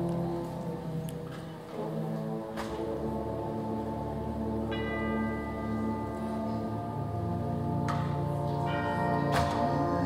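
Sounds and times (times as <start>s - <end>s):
concert band sustained chords: 0.0s - 10.0s
tubular bell ringing: 4.4s - 10.0s.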